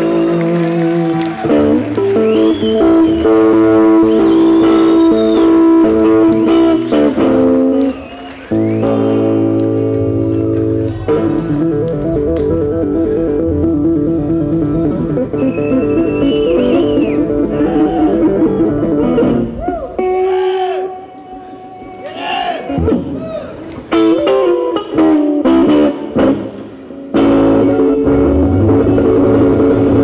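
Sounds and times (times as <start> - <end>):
sliding bending guitar notes: 0.0 - 22.0, 22.7 - 30.0
blues band playing: 0.0 - 30.0.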